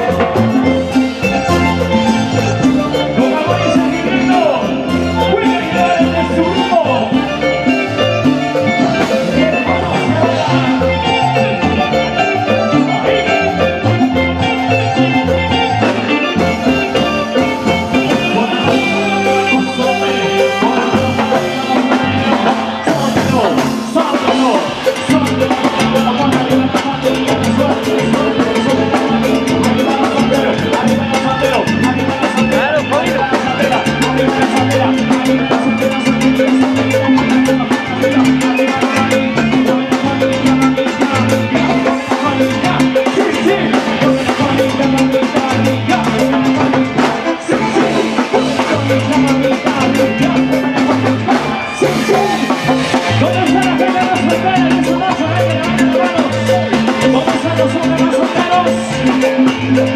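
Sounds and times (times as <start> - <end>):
electric guitar: 0.0 - 59.9.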